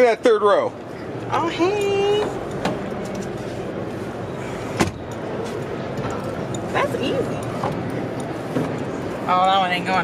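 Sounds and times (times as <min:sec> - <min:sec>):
exhibition hall background noise: 0:00.0 - 0:10.0.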